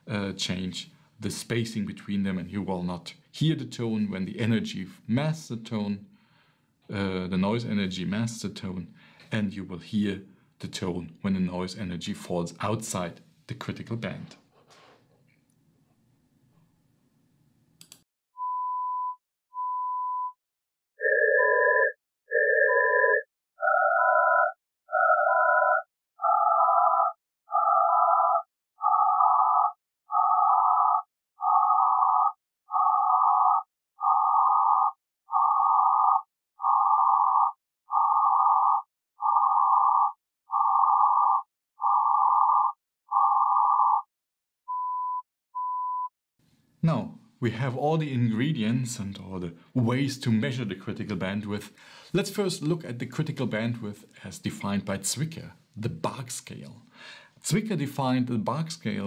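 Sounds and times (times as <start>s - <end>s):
sine tone beeps: 18.4s - 20.4s, 44.7s - 46.1s.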